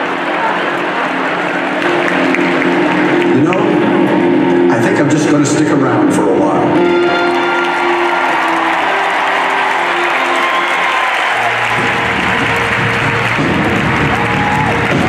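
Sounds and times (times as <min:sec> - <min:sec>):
audience applauding: 0:00.0 - 0:04.5, 0:06.8 - 0:15.0
music: 0:00.0 - 0:15.0.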